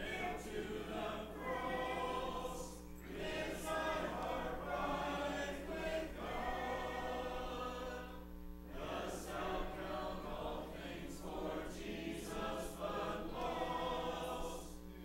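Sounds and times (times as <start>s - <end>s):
congregation singing a hymn: 0.0s - 15.0s.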